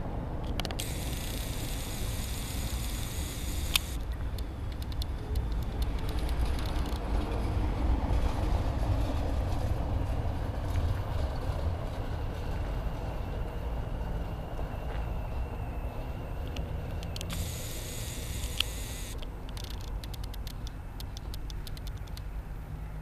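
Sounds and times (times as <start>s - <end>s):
bus and van driving away: 0.0s - 23.0s
distant street traffic rumble: 0.0s - 23.0s
faint clicks: 2.4s - 7.1s, 16.4s - 22.3s.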